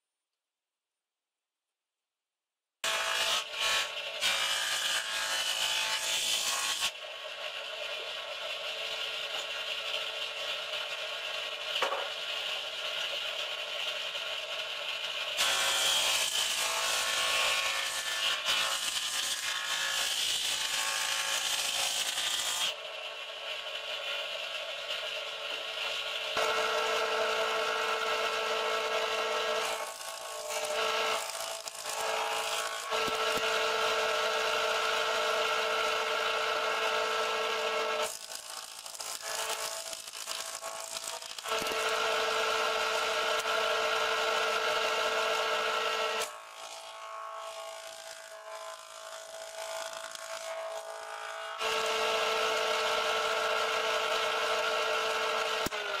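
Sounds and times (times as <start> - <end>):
electric jointer planing wood: 2.8 - 56.0.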